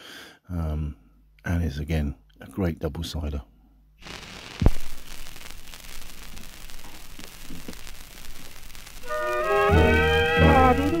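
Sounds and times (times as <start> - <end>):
record surface hiss and crackle: 4.0 - 11.0
stylus thump on record: 4.6 - 4.9.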